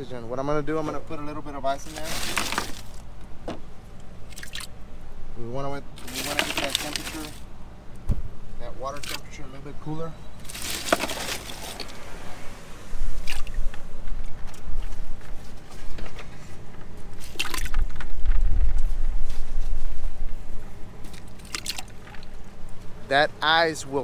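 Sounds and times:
ice cubes clattering: 1.8 - 3.0, 6.0 - 7.4, 10.4 - 11.9
ice splashing into water: 10.5 - 11.9, 21.4 - 22.3.

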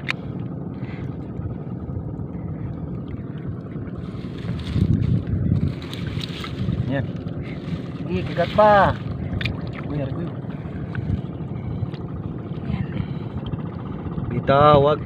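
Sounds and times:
wind rumbling on microphone: 0.0 - 15.0
seagrass rustling: 3.9 - 9.8
water splashing: 5.6 - 11.2.

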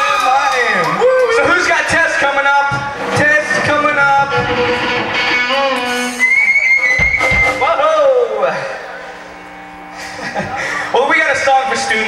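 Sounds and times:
low amplifier hum: 0.0 - 12.0
shrill steady whistle: 5.9 - 7.9.

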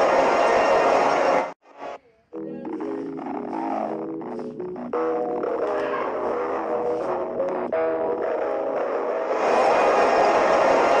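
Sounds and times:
distorted noisy wash: 0.0 - 11.0.

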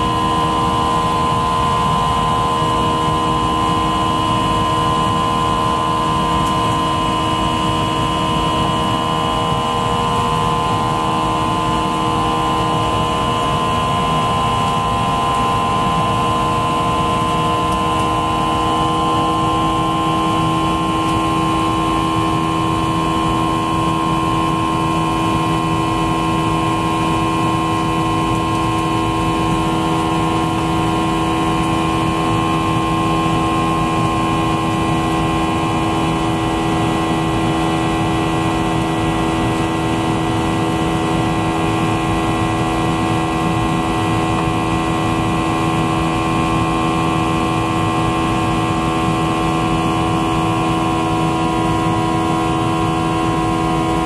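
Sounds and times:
jet engine drone: 0.0 - 54.0
jet engine whine: 0.0 - 54.0.

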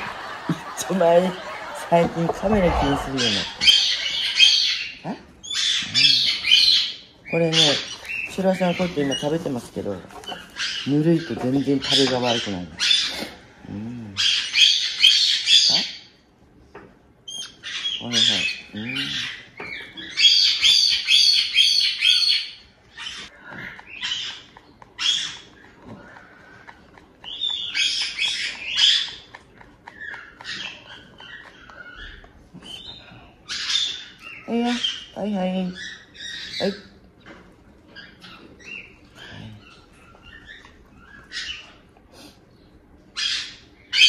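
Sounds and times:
parrot chick squawking: 1.0 - 13.4, 14.2 - 16.1, 17.3 - 37.0, 43.1 - 44.0.

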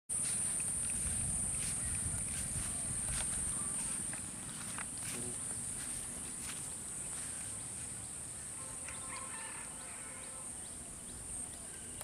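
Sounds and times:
high-pitched insect chorus: 0.1 - 12.0.

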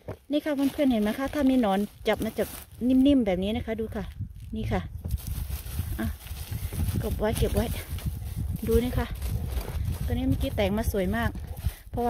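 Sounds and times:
wind rumble on microphone: 0.0 - 12.0
hand patting soil and pine needles: 0.3 - 12.0.

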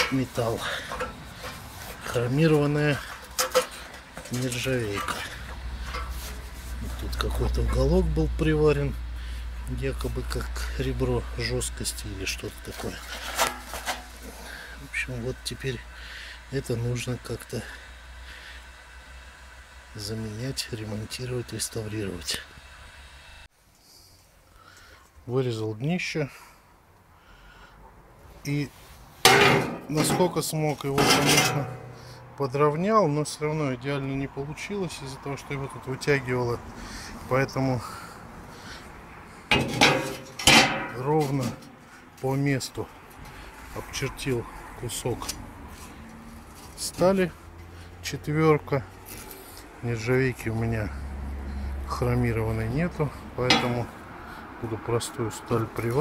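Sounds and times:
glove scraping over sheet steel: 12.7 - 14.6
steel plate clanking on stove: 31.0 - 32.0, 39.5 - 41.0, 53.5 - 53.9.

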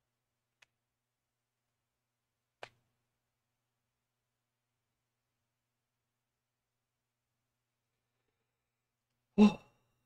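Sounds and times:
man sighing: 9.4 - 9.7.

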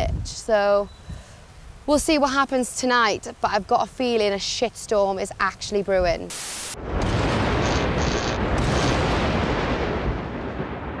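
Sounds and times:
dense low rumbling: 6.8 - 11.0.

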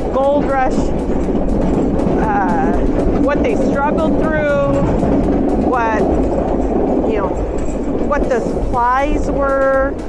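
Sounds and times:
woman speaking: 0.0 - 0.9, 2.2 - 5.0, 5.6 - 6.2, 7.0 - 7.4, 8.1 - 10.0
railway car rumbling and rattling: 0.0 - 10.0.

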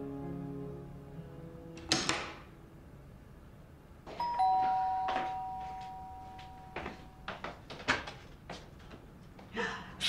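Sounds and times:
two-tone doorbell chime: 4.1 - 7.3.

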